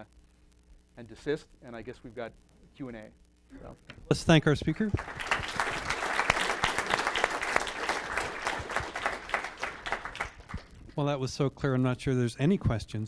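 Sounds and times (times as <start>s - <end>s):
audience applauding: 4.8s - 10.8s.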